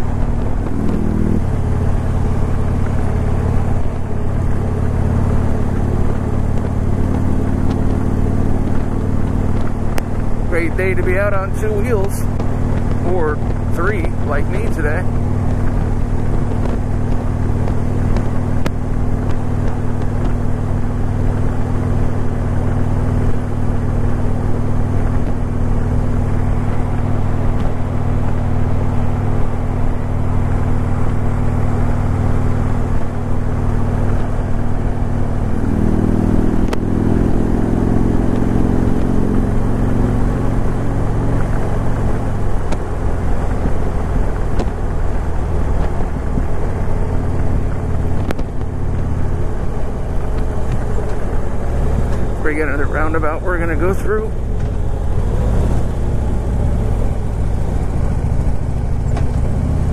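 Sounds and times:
trike engine running: 0:00.0 - 0:59.9
wind and road rush: 0:00.0 - 0:59.9.

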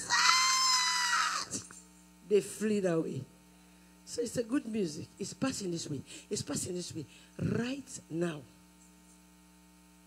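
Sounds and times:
woman shrieking into microphone: 0:00.0 - 0:01.6
electrical hum: 0:00.0 - 0:10.0.

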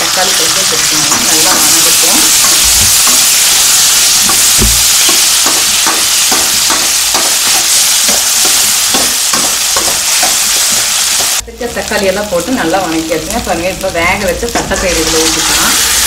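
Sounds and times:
vegetables sizzling in oil: 0:00.0 - 0:16.0.

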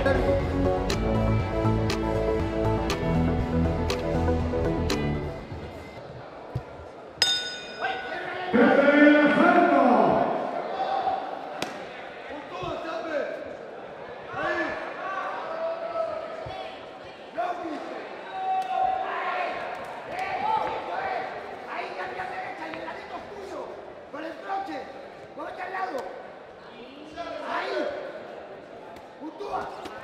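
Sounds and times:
boxing ring bell: 0:07.2 - 0:08.1.

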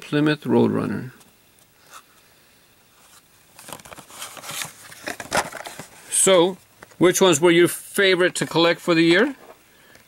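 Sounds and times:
plastic packaging rustle: 0:03.0 - 0:07.0.

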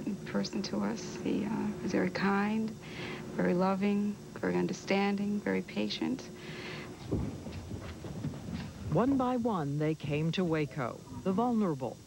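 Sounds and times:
footsteps of people walking: 0:06.9 - 0:09.4.

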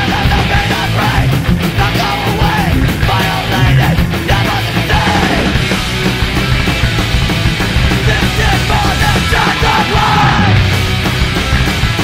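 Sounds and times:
punk rock band playing: 0:00.0 - 0:12.0
yelled lead vocal: 0:00.0 - 0:12.0.

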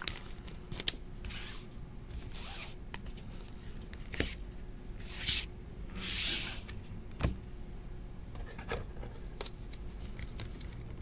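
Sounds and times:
cards sliding and scraping: 0:00.8 - 0:04.4, 0:05.0 - 0:06.8.

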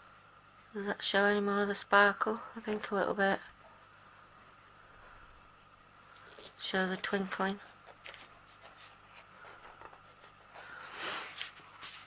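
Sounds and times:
low steady hum: 0:00.0 - 0:12.0
hand brushing canvas: 0:07.8 - 0:12.0.

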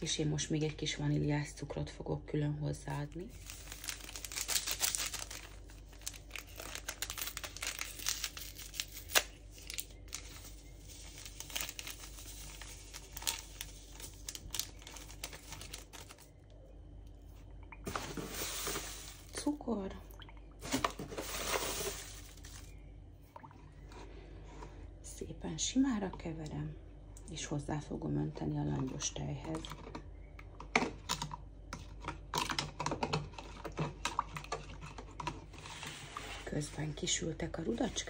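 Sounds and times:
paper sachet crinkling and tearing: 0:03.2 - 0:16.3, 0:17.9 - 0:19.4, 0:20.6 - 0:22.7
spoon stirring in plastic jug: 0:31.7 - 0:36.5.

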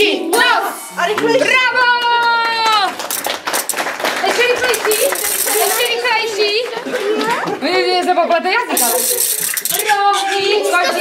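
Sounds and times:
children chattering: 0:04.3 - 0:11.0
hissing shaker shake: 0:04.8 - 0:06.0, 0:08.8 - 0:10.0.

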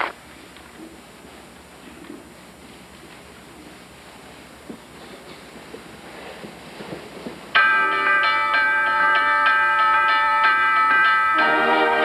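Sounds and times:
faint shuffles: 0:00.3 - 0:07.5.

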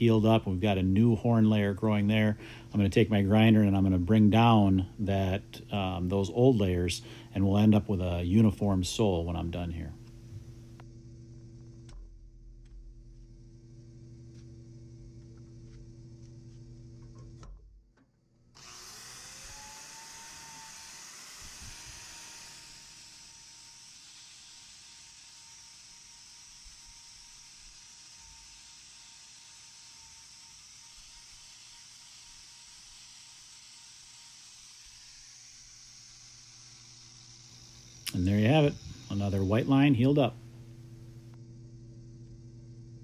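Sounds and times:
steady low hum: 0:00.0 - 0:17.6, 0:18.6 - 0:43.0
angle grinder whining: 0:18.5 - 0:41.4.

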